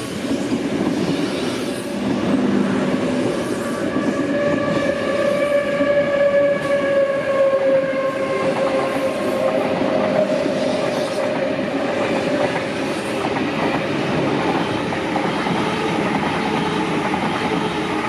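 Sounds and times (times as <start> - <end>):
rumble of train wheels on rail: 0.0 - 18.0
train whine: 0.0 - 18.0.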